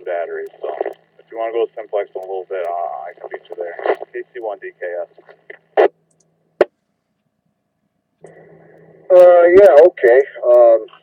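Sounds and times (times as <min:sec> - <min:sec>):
radio squelch click: 0:00.4 - 0:01.0, 0:02.2 - 0:04.5.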